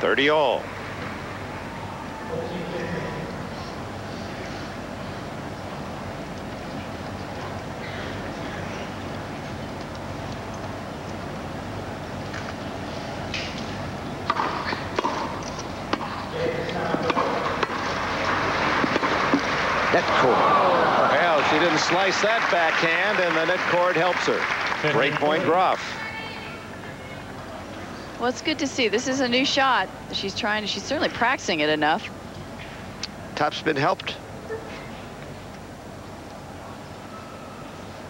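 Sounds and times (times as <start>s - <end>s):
racket striking tennis ball: 14.2s - 16.2s, 16.8s - 18.0s, 18.7s - 19.5s
crowd murmur: 16.1s - 22.4s.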